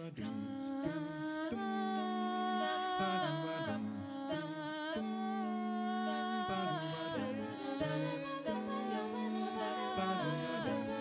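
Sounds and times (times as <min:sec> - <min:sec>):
female vocal group singing a cappella: 0:00.0 - 0:11.0.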